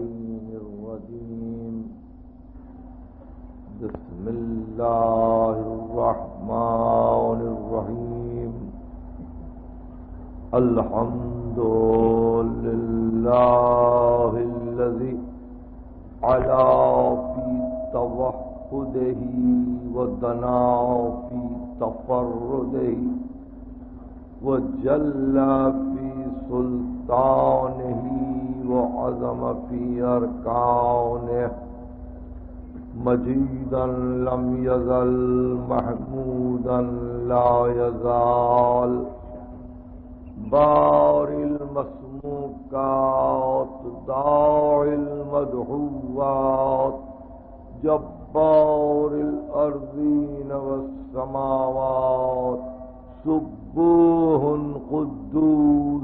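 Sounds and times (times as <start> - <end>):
man chanting melodically: 0.0 - 2.1, 3.6 - 9.4, 10.4 - 15.5, 16.1 - 32.0, 32.6 - 39.6, 40.2 - 56.0
steady low hum: 0.0 - 56.0.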